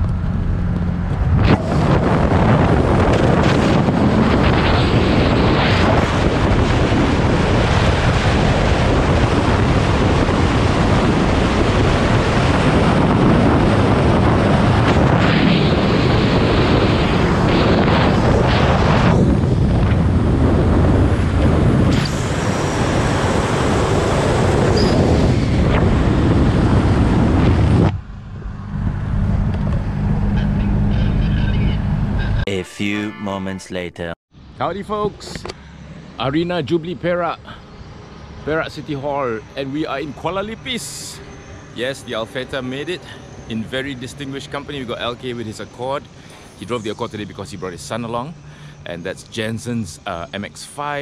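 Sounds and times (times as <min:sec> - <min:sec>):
wind buffeting microphone: 0:00.0 - 0:31.2
car engine droning: 0:00.0 - 0:32.5, 0:34.4 - 0:51.0
road noise: 0:00.0 - 0:51.0.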